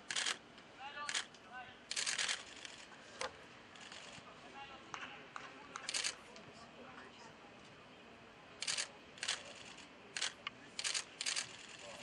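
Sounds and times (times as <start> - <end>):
camera shutter bursts: 0.0 - 0.4, 1.0 - 1.3, 1.9 - 2.9, 5.8 - 6.2, 8.6 - 12.0
faint outdoor background: 0.0 - 12.0.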